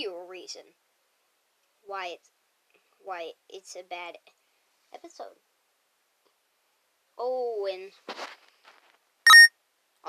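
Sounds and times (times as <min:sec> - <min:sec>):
faint hiss: 0:00.0 - 0:09.1
short electronic beep: 0:09.3 - 0:09.5.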